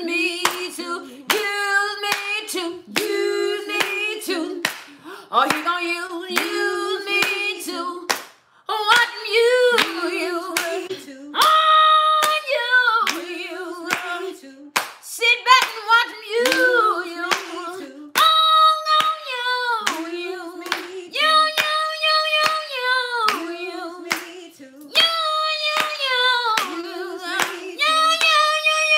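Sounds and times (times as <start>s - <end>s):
women singing gospel unaccompanied: 0.0s - 28.9s
hand claps: 3.0s - 6.6s, 8.1s - 9.1s, 9.8s - 10.0s, 13.9s - 14.2s, 14.8s - 15.8s, 16.4s - 16.7s, 17.3s - 19.2s, 19.8s - 21.8s, 23.3s - 23.5s, 24.1s - 28.9s.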